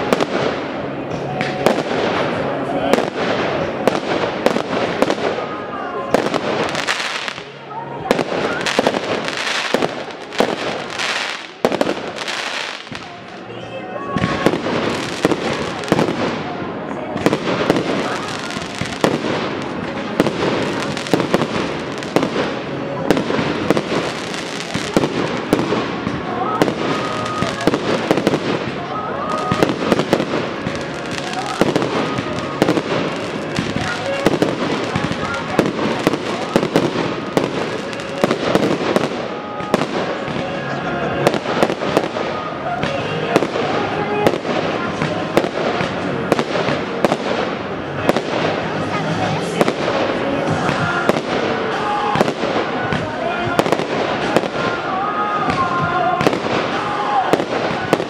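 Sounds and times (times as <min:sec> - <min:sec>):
fireworks bangs: 0:00.0 - 0:58.0.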